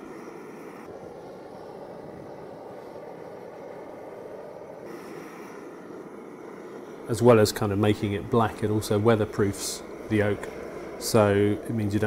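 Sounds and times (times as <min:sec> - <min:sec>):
blowtorch flame hissing: 0:00.0 - 0:12.0.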